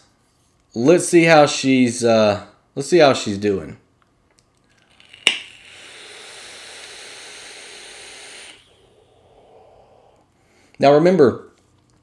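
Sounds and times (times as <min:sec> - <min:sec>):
vape atomizer hissing: 0:04.7 - 0:10.3
breathy exhale: 0:08.7 - 0:10.8.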